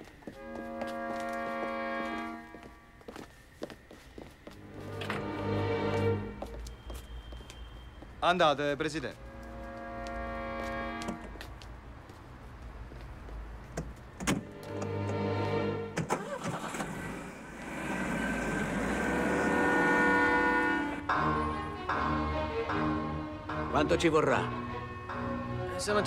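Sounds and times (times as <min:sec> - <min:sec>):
film music with held notes: 0:00.0 - 0:03.0, 0:04.4 - 0:06.8, 0:14.3 - 0:16.6, 0:18.6 - 0:26.0.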